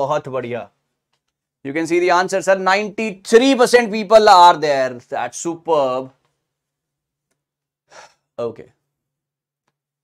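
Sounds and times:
man breathing: 7.8 - 8.4.

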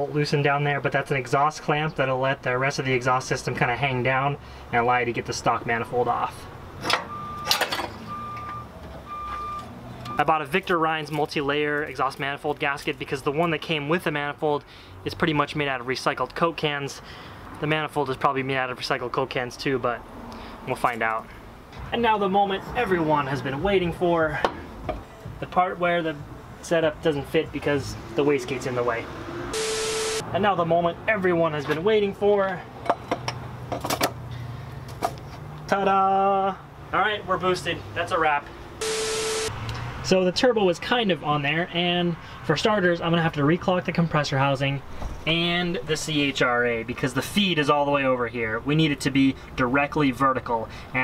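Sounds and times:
vehicle reversing alarm beeping: 7.0 - 10.5, 29.5 - 30.2, 38.8 - 39.5.

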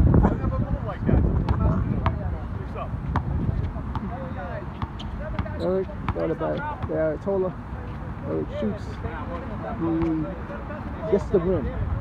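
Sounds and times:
wind buffeting microphone: 0.0 - 6.8, 10.9 - 12.0
basketball bouncing on court: 1.4 - 2.2, 3.1 - 4.2, 4.8 - 7.0.

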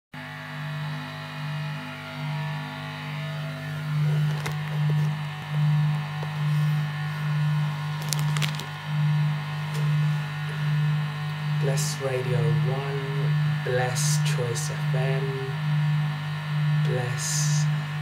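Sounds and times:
guitar amplifier mains hum: 0.2 - 18.0
guitar cable handling clicks: 4.2 - 5.1, 8.0 - 8.7.

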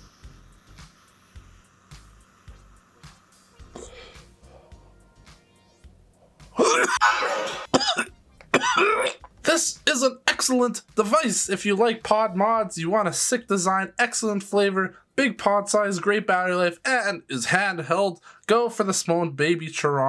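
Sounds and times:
faint vape draw: 0.0 - 4.3
loud coughing: 6.6 - 9.3.

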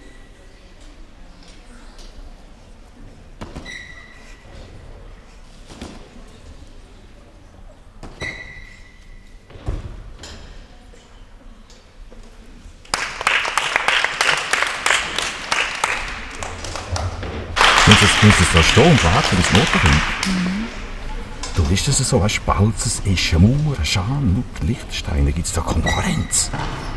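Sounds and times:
brief high squeaks: 3.6 - 4.5, 8.2 - 9.4
spectators applauding: 12.9 - 20.9.

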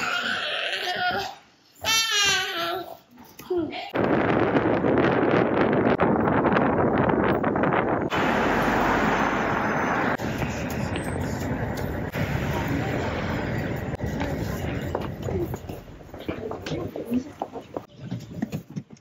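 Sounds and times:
wind on microphone: 3.9 - 17.0
traffic rushing: 8.1 - 17.0.

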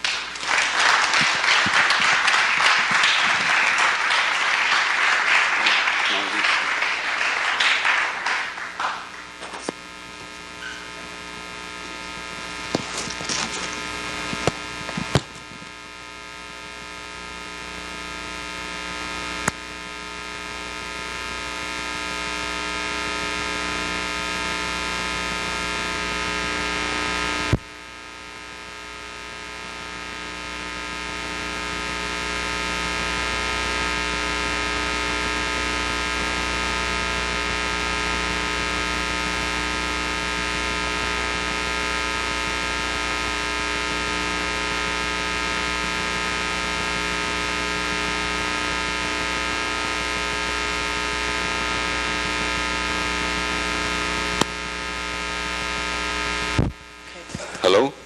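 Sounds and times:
electrical mains hum: 0.0 - 58.0
sharp microphone clicks: 11.9 - 15.8.

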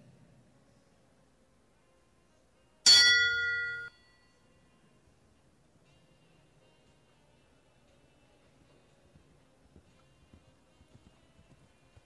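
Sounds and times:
bell ringing: 2.9 - 4.4.

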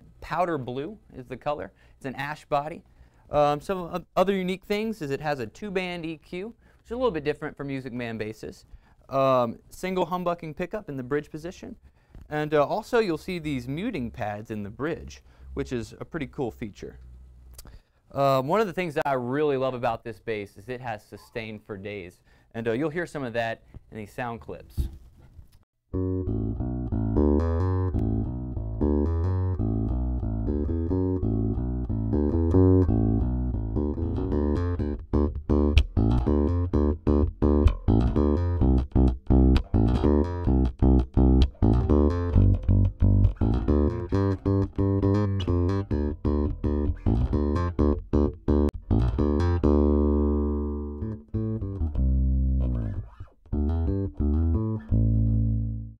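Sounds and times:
electric bass plucked notes: 25.9 - 56.0.

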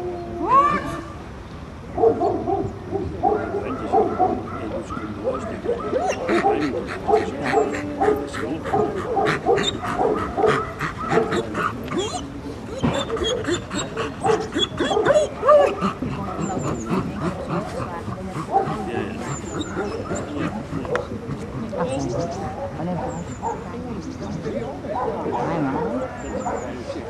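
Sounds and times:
people talking in background: 0.0 - 27.0
dog barking and yipping: 2.0 - 16.7, 18.4 - 21.1.

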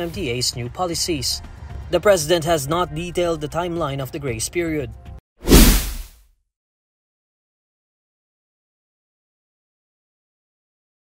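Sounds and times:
deep whoosh: 5.5 - 6.1.

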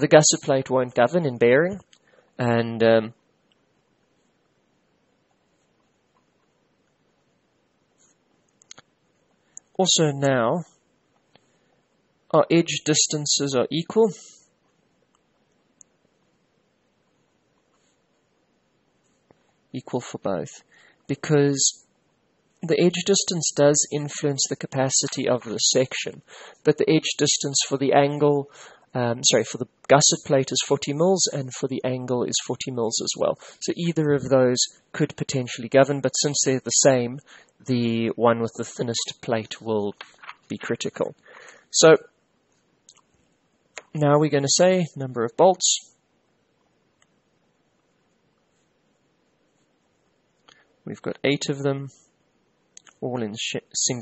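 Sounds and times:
man speaking: 0.0 - 3.2, 9.7 - 10.8, 12.3 - 14.4, 19.8 - 21.8, 22.6 - 42.1, 43.8 - 46.0, 50.9 - 52.0, 52.8 - 54.0.

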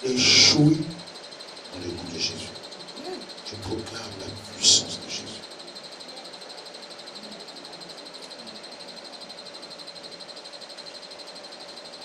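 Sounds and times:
faint high pulsing whine: 0.0 - 12.0
steady background hum: 0.0 - 12.0.

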